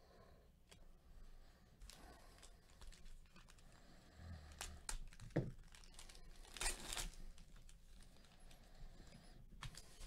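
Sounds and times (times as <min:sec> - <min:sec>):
plastic wrapper tearing and crinkling: 0:04.6 - 0:08.3.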